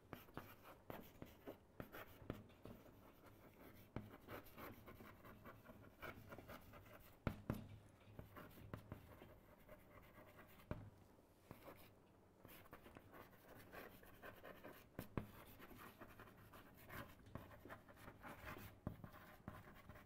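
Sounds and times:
handwriting scratching: 0.1s - 7.6s, 8.2s - 10.8s, 11.5s - 20.0s.

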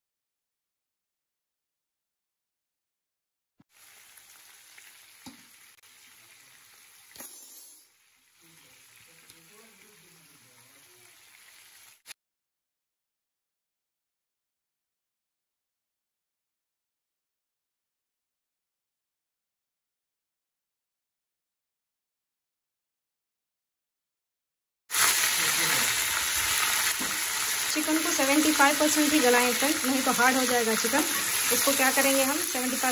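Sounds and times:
chicken sizzling in oil: 3.7s - 12.2s, 24.9s - 32.9s
spoon turning food in pan: 3.8s - 7.8s, 26.5s - 32.2s.

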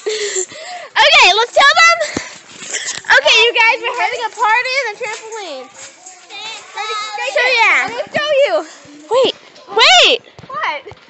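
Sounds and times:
children shrieking and calling: 4.3s - 10.2s.

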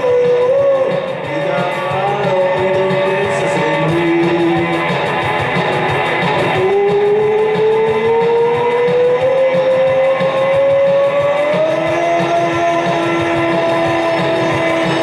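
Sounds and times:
rock music with steady beat: 0.0s - 15.0s.

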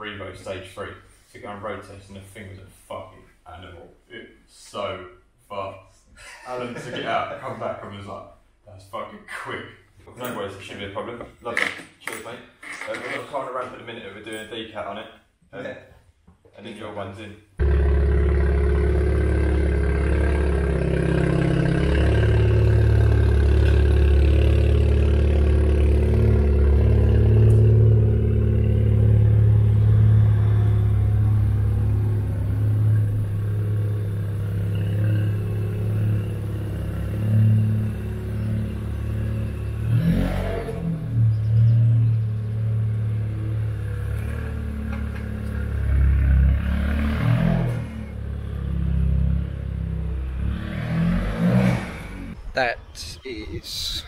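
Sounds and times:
car engine exhaust note: 17.6s - 52.4s.

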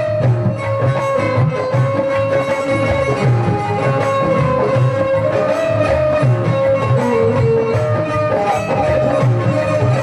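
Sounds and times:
steady percussion beat: 0.0s - 10.0s.

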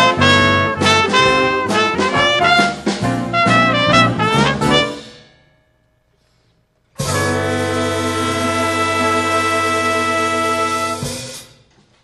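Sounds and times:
jazz big band playing: 0.0s - 5.4s, 7.0s - 11.7s
loud held band chord: 7.0s - 11.2s.

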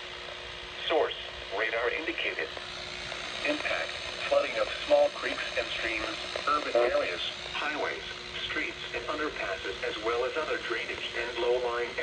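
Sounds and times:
synthesized voice through radio speaker: 3.4s - 12.0s.

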